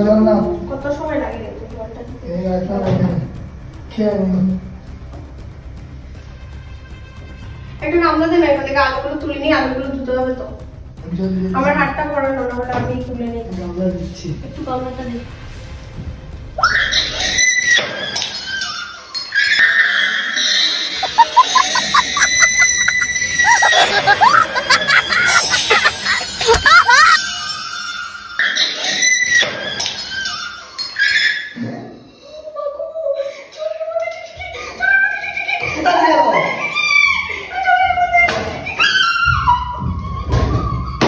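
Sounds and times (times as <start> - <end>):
steady high tone: 20.9 - 27.6.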